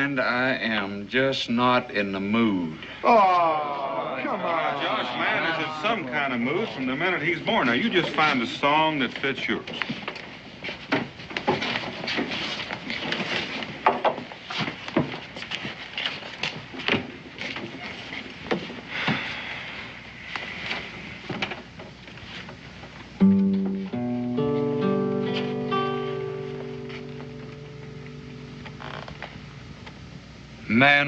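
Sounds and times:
crowd noise: 3.0 - 9.0
knocks and clatter: 10.8 - 15.4
acoustic guitar picking chords: 23.2 - 30.1.

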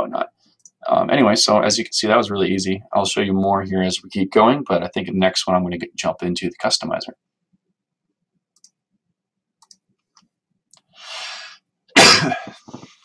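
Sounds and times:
faint clicks: 9.6 - 10.9
sharp breath in: 10.9 - 11.6
loud cough: 12.0 - 12.7.

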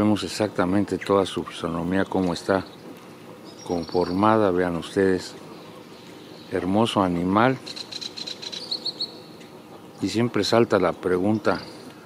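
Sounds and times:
small bird chirping: 2.0 - 10.2.

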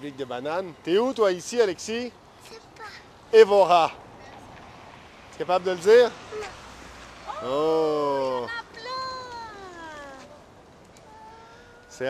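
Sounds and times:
child whining: 6.3 - 6.6, 11.1 - 12.0.

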